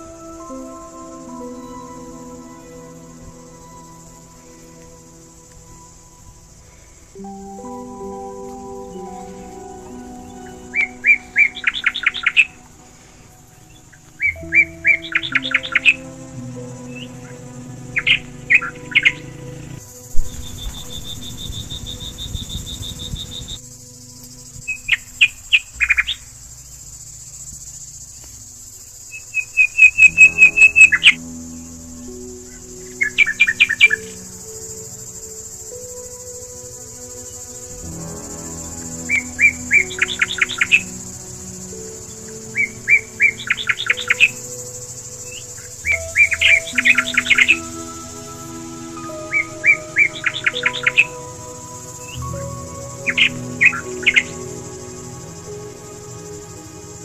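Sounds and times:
high bird trill: 0.0s - 26.4s, 28.9s - 57.0s
soft music with low held notes: 0.0s - 57.0s
songbird chirping: 0.0s - 57.0s.

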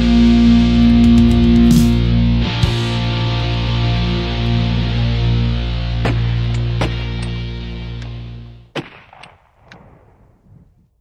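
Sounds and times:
punk rock band ringing out: 0.0s - 7.6s.

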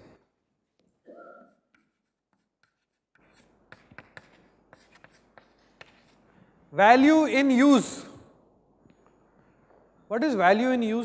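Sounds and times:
chalk tapping and scratching on chalkboard: 1.5s - 6.3s.

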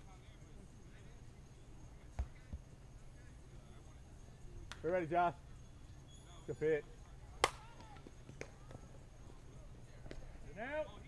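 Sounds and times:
softball bat hitting ball: 7.4s - 8.8s.

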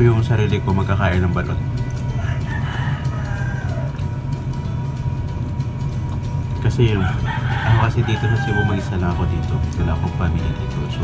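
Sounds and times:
low hum: 0.0s - 7.5s
rooster crowing: 2.1s - 4.3s, 7.0s - 9.3s.

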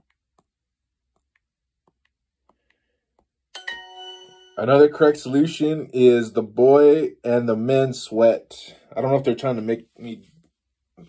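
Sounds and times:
phone multi-tone chime: 3.6s - 5.0s.

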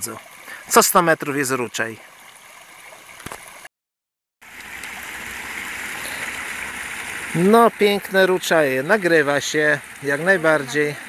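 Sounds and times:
stream splashing over cascade: 0.0s - 3.7s, 4.4s - 11.0s.

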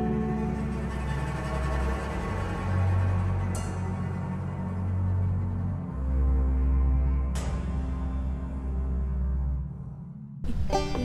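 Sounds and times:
low bass drone music: 0.0s - 11.0s.

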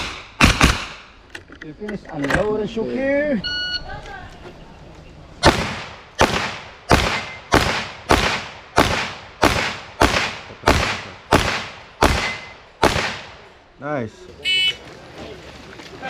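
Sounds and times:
handgun shots: 0.0s - 1.1s, 5.4s - 13.3s.

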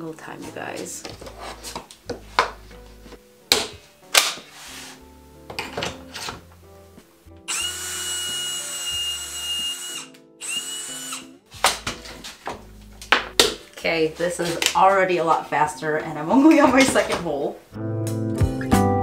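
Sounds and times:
cordless drill whining: 7.5s - 11.4s.

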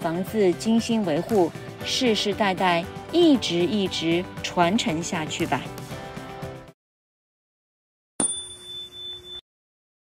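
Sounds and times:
bell-like ding: 8.2s - 9.4s.

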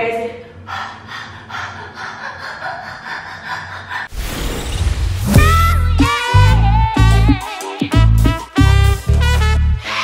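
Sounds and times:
woman laughing hard: 1.6s - 3.9s.

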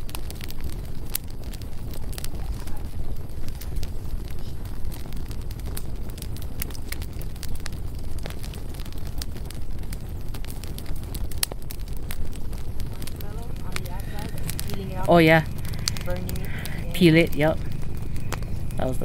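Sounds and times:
campfire crackling and popping: 0.0s - 19.0s
fire low rumble: 0.0s - 19.0s.

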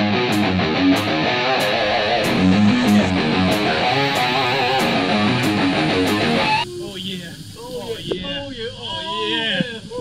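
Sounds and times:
steady hiss: 1.0s - 10.0s.

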